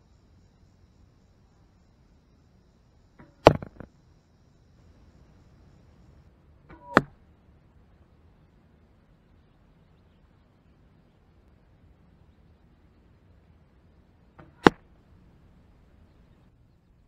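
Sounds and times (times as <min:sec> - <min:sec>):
arrow hitting target: 0:03.2 - 0:03.9, 0:06.7 - 0:07.2, 0:14.4 - 0:14.9.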